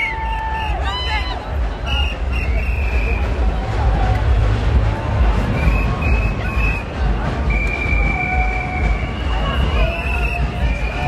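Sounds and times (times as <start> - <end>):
crowd voices: 0.0 - 11.0
heavy bass rumble: 0.0 - 11.0
shrill whistle blasts: 1.8 - 3.3, 5.5 - 11.0.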